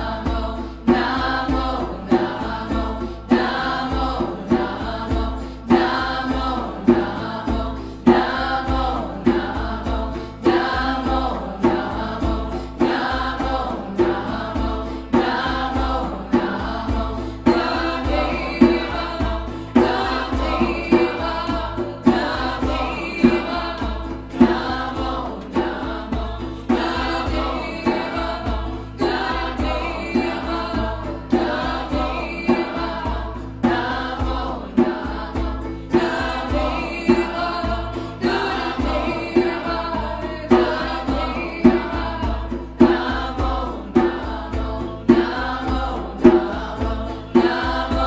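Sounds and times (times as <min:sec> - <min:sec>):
group chanting: 0:00.0 - 0:48.0
low drum beat: 0:00.0 - 0:48.0.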